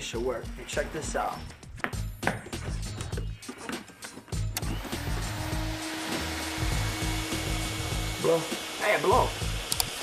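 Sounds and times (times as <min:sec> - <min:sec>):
background music with bass beat: 0:00.0 - 0:08.2
vacuum cleaner humming: 0:04.6 - 0:10.0.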